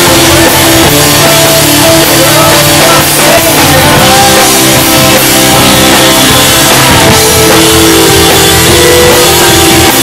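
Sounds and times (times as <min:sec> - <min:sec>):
drum kit: 0:00.0 - 0:10.0
electric guitars: 0:00.0 - 0:10.0
rock band playing live: 0:00.0 - 0:10.0.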